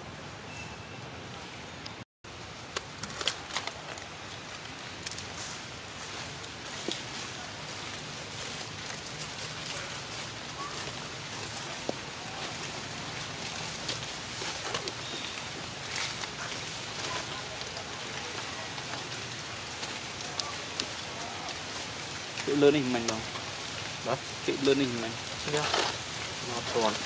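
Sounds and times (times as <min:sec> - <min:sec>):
outdoor background hiss: 0:00.0 - 0:27.0
faint clicks and rustles: 0:01.8 - 0:27.0.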